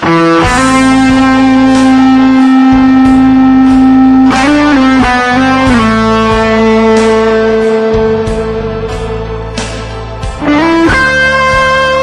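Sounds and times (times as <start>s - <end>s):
electric guitar solo: 0.0s - 12.0s.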